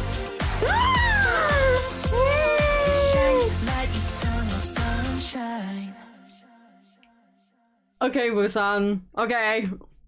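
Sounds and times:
pop song with steady beat: 0.0s - 7.5s
high voice singing swooping notes: 0.7s - 6.2s.

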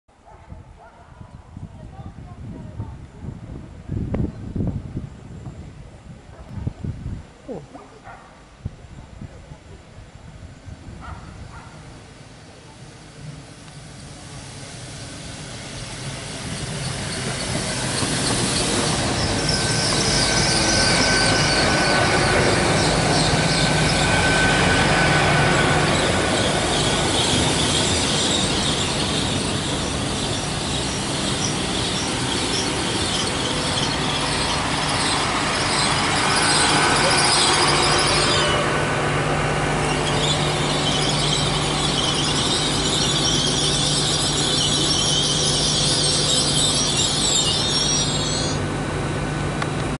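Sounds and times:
train low hum: 0.1s - 49.9s
high squeal of train wheels: 13.7s - 39.0s, 39.6s - 48.8s.

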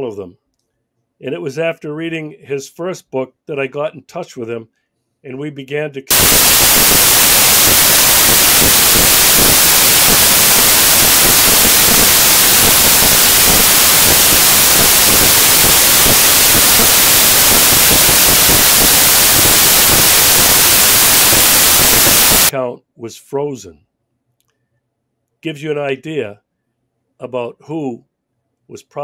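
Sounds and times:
loud static hiss: 6.1s - 22.6s.

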